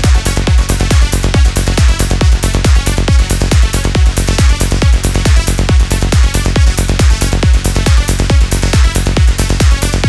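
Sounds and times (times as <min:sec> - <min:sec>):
kick drum: 0:00.0 - 0:10.0
psytrance music: 0:00.0 - 0:10.0
pulsing bassline: 0:00.0 - 0:10.0.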